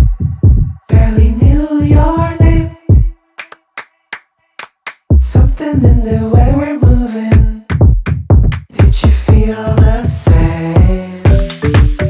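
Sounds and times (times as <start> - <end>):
clap-like percussion hits: 3.4 - 5.2, 7.3 - 9.2, 11.3 - 12.0.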